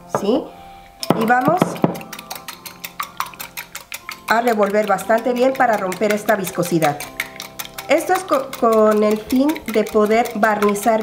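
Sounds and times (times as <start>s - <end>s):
whisk clicking against glass bowl: 1.0s - 11.0s.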